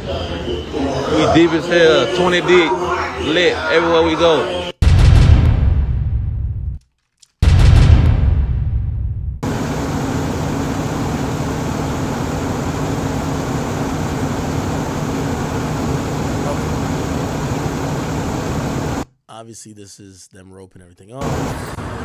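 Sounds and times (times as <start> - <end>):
voices outdoors: 0.0 - 4.8, 15.5 - 17.9
loud bass-heavy audio: 4.8 - 6.8, 7.4 - 9.5
vehicle noise: 9.4 - 19.0, 21.2 - 22.0.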